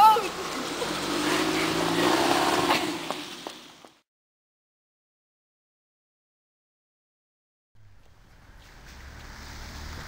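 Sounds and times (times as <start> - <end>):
vehicle engine humming: 0.0 - 4.0, 7.8 - 10.0.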